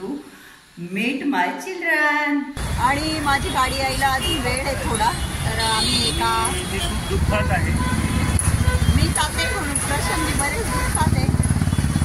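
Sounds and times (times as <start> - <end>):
voices: 0.8 - 12.0
road vehicle engine rumble: 2.6 - 12.0.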